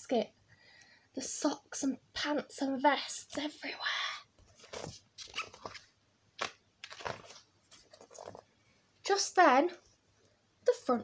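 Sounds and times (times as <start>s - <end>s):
paper page rustling: 4.4s - 8.5s.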